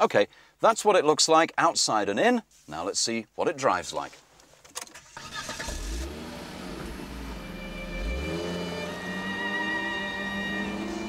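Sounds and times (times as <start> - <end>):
car engine starting and running: 4.7 - 11.0
background music: 7.2 - 11.0.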